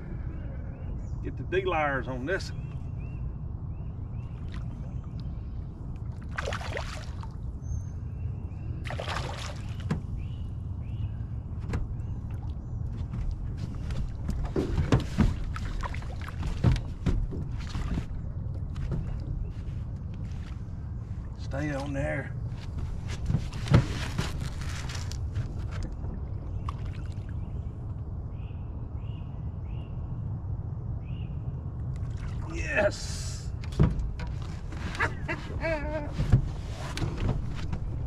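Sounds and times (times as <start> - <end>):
steady low rumble: 0.0 - 9.0, 9.7 - 38.0.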